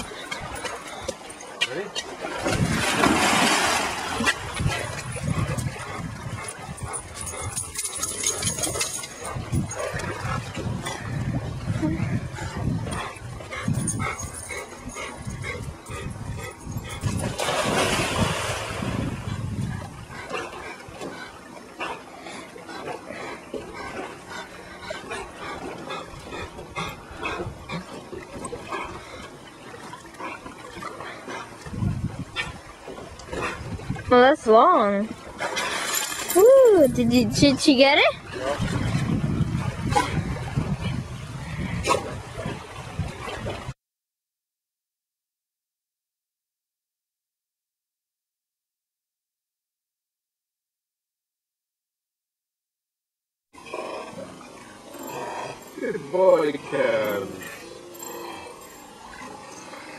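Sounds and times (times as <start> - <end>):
dog splashing through water: 0.0 - 9.4, 17.0 - 19.3, 35.1 - 36.8.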